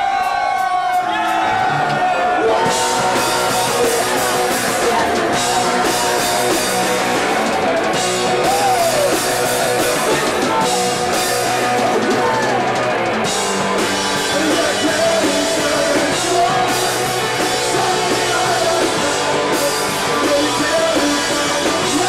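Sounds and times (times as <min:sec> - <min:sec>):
distorted electric guitars: 0:00.0 - 0:22.0
drum kit with crashing cymbals: 0:02.5 - 0:22.0
person singing into microphone: 0:14.2 - 0:22.0.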